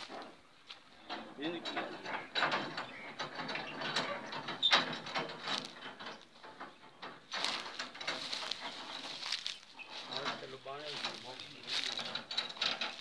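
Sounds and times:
metal cage rattling and clanking: 0.0 - 13.0.

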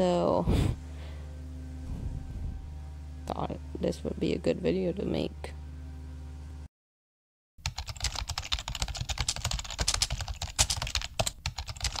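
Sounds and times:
fast keyboard typing: 7.6 - 12.0.

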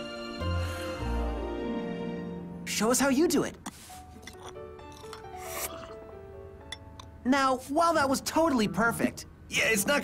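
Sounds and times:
soft background music: 0.0 - 10.0
sip from teacup: 3.6 - 6.0.

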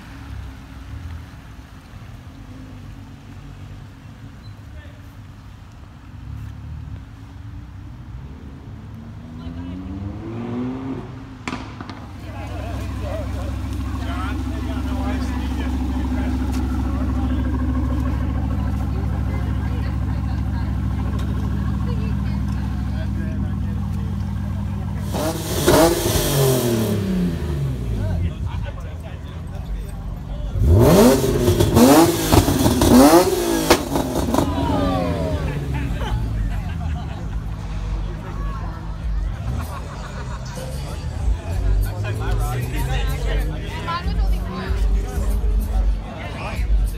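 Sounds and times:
sports car engine revving: 8.0 - 28.7, 30.1 - 38.3.

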